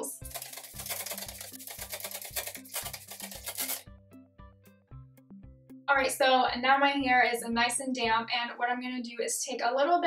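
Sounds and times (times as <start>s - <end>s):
spray bottle hissing: 0.3s - 3.8s.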